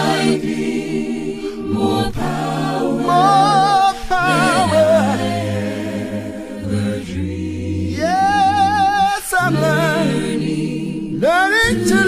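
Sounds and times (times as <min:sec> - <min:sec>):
group singing gospel in harmony: 0:00.0 - 0:12.0.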